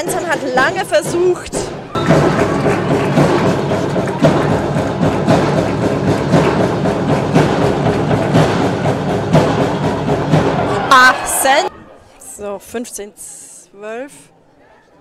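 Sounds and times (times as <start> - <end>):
music: 0.0 - 11.6
loud rhythmic drumming: 0.0 - 11.7.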